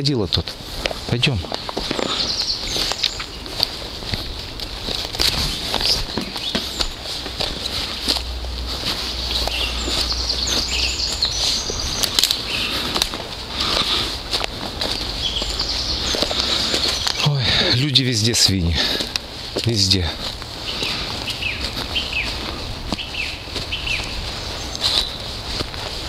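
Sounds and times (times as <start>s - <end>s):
footsteps crunching dry leaves: 0.0s - 26.0s
bird chirps: 1.9s - 3.6s, 5.5s - 8.1s, 9.1s - 13.0s, 14.8s - 18.6s, 19.7s - 25.4s.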